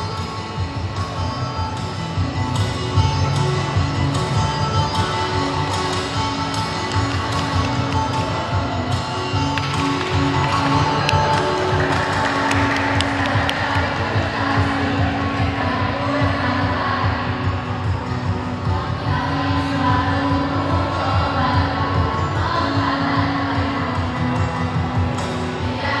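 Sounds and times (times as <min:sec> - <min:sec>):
musical accompaniment: 0:00.0 - 0:26.0
vocal group singing held notes: 0:10.2 - 0:24.5.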